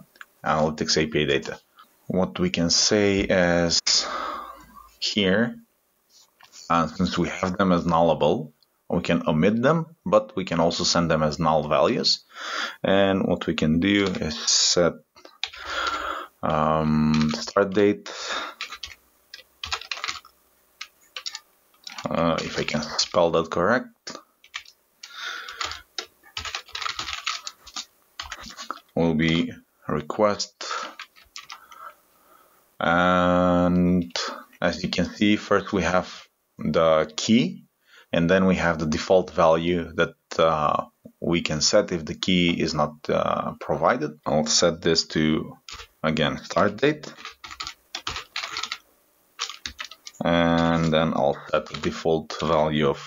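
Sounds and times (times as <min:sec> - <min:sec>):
computer keyboard typing: 0:14.0 - 0:14.3, 0:15.3 - 0:16.0, 0:17.1 - 0:17.8, 0:18.4 - 0:23.2, 0:24.4 - 0:29.4, 0:30.8 - 0:31.8, 0:45.7 - 0:45.9, 0:46.5 - 0:48.8, 0:49.4 - 0:52.6.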